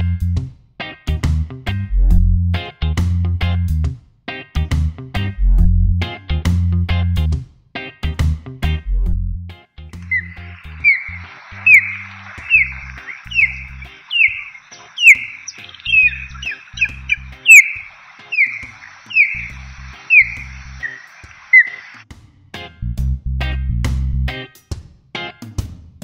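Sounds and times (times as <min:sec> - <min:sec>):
background music with bass: 0:00.0 - 0:14.0, 0:22.1 - 0:26.0
osprey whistled calls: 0:10.0 - 0:22.0.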